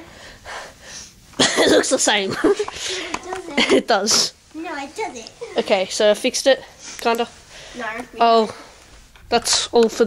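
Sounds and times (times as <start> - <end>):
child breathing: 0.0 - 1.2, 2.6 - 3.3, 6.6 - 8.9.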